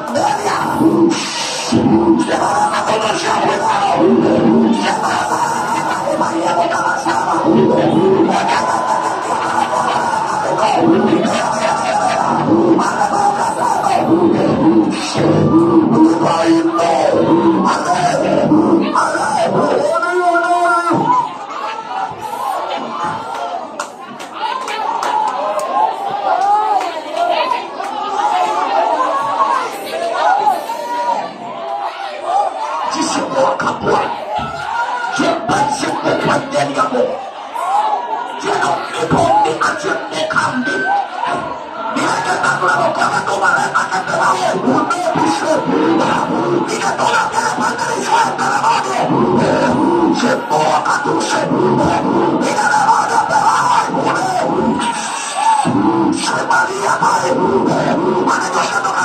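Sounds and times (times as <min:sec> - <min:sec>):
loud music: 0:00.0 - 0:21.3
congregation praying aloud: 0:00.0 - 0:59.0.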